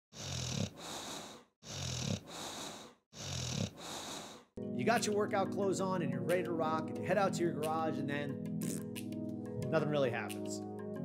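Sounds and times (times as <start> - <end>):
person snoring: 0.1 - 4.5.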